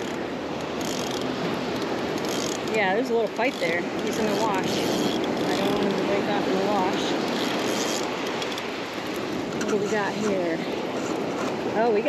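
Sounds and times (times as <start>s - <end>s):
waves breaking on beach: 0.0s - 12.0s.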